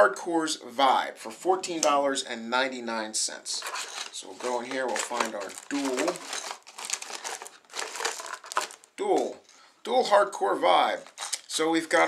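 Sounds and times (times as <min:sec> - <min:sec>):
packaging crinkling: 0:03.6 - 0:09.0, 0:11.0 - 0:11.5.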